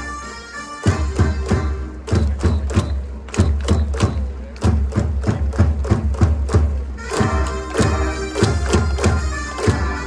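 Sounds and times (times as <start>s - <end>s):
faint wind instruments: 0.0s - 10.0s
drum hits: 0.9s - 10.0s
crowd clapping: 2.0s - 10.0s.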